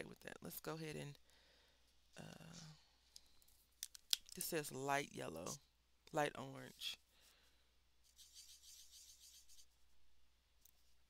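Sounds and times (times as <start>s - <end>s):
marker scratching on paper: 8.0s - 9.9s.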